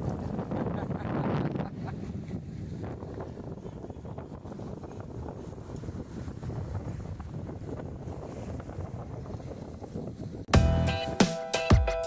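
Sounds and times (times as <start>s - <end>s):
wind buffeting microphone: 0.0s - 10.5s
music with sharp beat: 10.5s - 12.0s.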